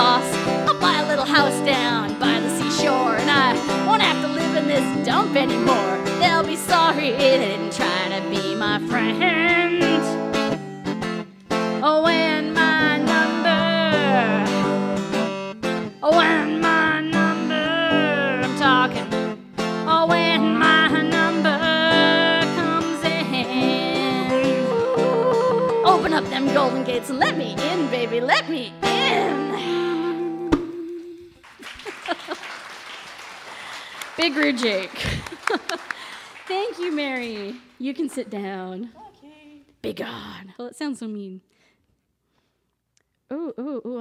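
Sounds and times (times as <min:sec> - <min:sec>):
acoustic string instrument: 0:00.0 - 0:31.2.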